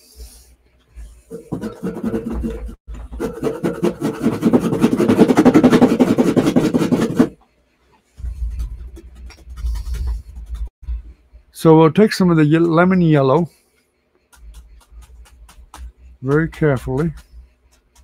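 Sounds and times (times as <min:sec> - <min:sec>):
paintbrush scrubbing on palette: 0:00.0 - 0:07.4, 0:08.1 - 0:11.4, 0:12.0 - 0:18.0.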